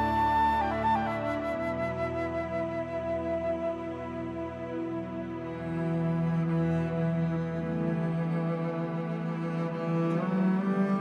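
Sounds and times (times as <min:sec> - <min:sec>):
flute long tone: 0:00.0 - 0:11.0
low sustained accompaniment: 0:00.0 - 0:11.0.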